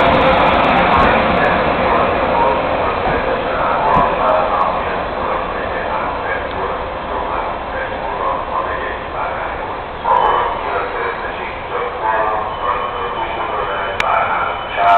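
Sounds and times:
electric locomotive running: 0.0s - 14.9s
voices talking: 0.6s - 14.9s.

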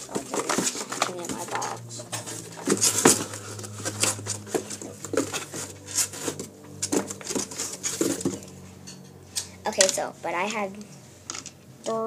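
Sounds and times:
plastic toys clattering in box: 0.0s - 8.5s.

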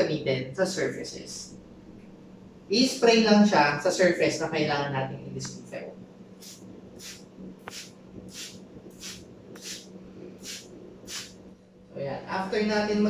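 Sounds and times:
trigger spray bottle spraying: 6.4s - 11.4s.

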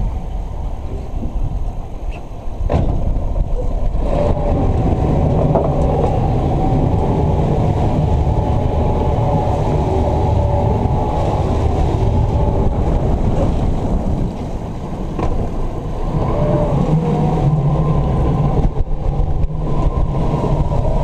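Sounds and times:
outboard motors running: 0.0s - 21.0s.

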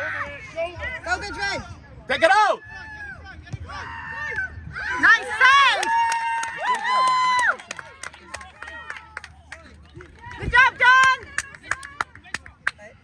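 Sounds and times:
spectators cheering: 4.8s - 9.3s
people clapping: 5.5s - 12.9s.

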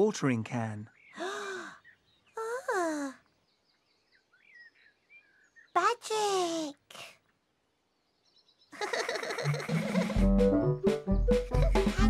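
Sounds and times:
faint bird chirps: 0.8s - 9.6s
breathy gasp: 1.2s - 1.8s.

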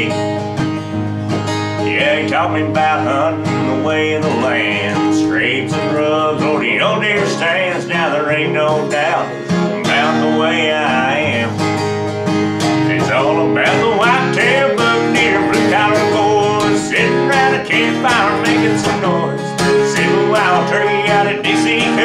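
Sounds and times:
man singing: 0.0s - 0.4s, 1.8s - 11.8s, 12.7s - 22.0s
acoustic guitar strumming: 0.0s - 22.0s.

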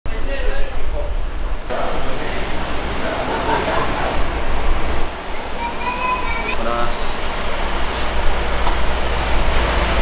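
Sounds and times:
diesel engine rumbling: 0.1s - 10.0s
background voices: 1.7s - 8.2s.

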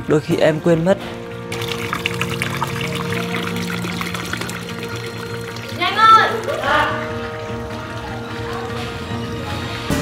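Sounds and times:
background music: 0.0s - 10.0s
water splashing into bucket: 1.5s - 7.0s.

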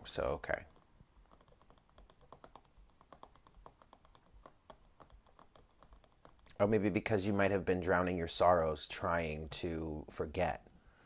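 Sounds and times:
fingernails clicking and tapping: 0.7s - 6.6s.

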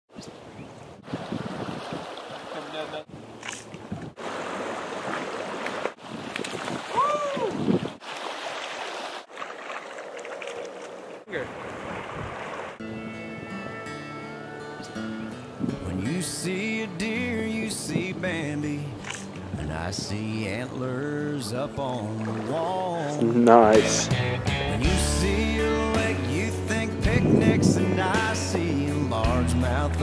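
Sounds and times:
river water flowing: 0.3s - 13.4s, 17.6s - 19.9s, 20.5s - 24.6s
wind on microphone: 0.5s - 2.4s, 6.0s - 8.0s, 11.5s - 12.6s, 15.6s - 16.0s, 27.1s - 28.0s
music: 12.8s - 18.6s, 23.6s - 30.0s.

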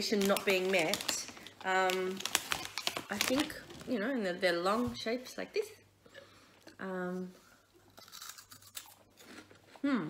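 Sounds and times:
crunchy snack being chewed: 7.9s - 9.6s.

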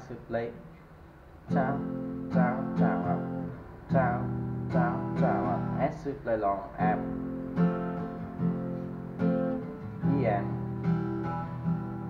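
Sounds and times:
acoustic guitar strummed: 1.4s - 12.0s.

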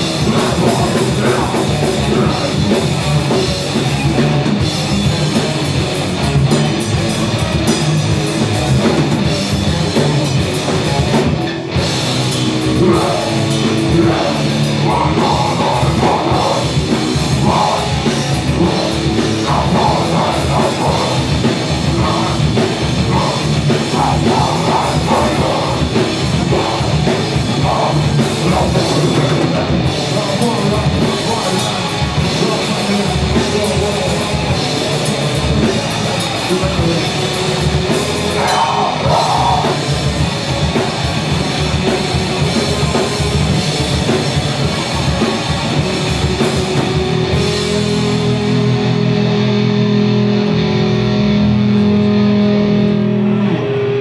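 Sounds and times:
drum kit: 0.0s - 54.0s
electric guitars: 0.0s - 54.0s.

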